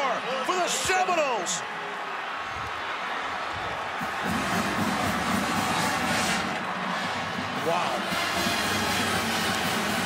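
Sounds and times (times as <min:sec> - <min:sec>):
stadium crowd cheering: 0:00.0 - 0:10.0
marching band brass playing: 0:04.0 - 0:10.0.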